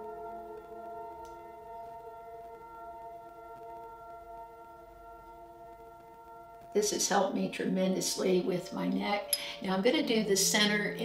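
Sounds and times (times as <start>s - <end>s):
ambient music sustained chord: 0.0s - 11.0s.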